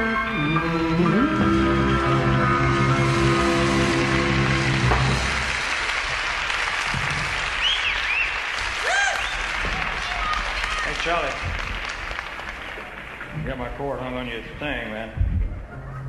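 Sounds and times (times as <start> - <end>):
audience applause: 3.1 - 14.0
whistles from audience: 7.5 - 9.6.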